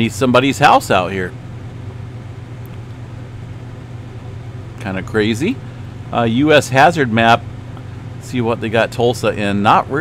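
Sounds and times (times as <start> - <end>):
low electrical hum: 0.0 - 10.0
faint click: 2.6 - 3.0.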